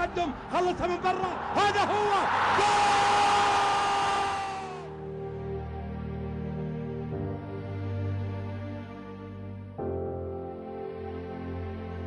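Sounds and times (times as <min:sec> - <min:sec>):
stadium crowd roaring: 0:00.0 - 0:04.9.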